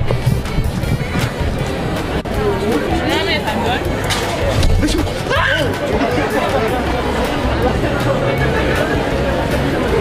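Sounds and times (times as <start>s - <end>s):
passersby chattering: 0.0s - 10.0s.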